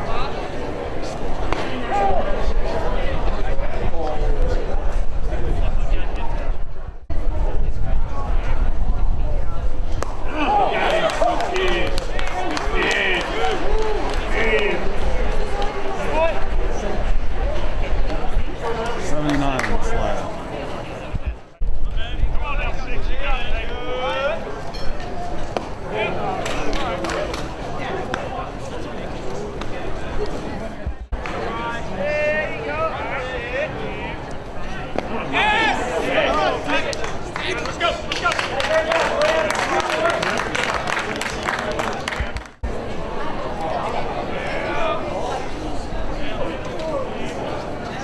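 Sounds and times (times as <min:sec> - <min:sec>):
people calling out and chattering: 0:00.0 - 0:48.0
voices on the field: 0:00.0 - 0:48.0.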